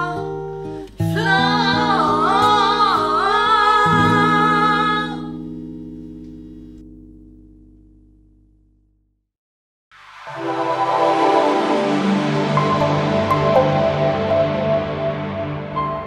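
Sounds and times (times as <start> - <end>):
women singing held note: 1.1 - 4.8
plucked-string accompaniment: 10.4 - 16.0.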